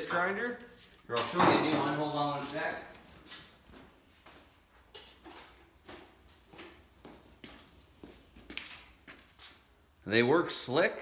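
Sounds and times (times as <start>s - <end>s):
footsteps on concrete floor: 0.0s - 9.8s.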